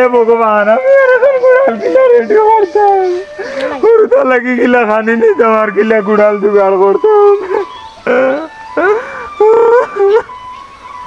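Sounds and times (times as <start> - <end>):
man sobbing and wailing: 0.0 - 10.3.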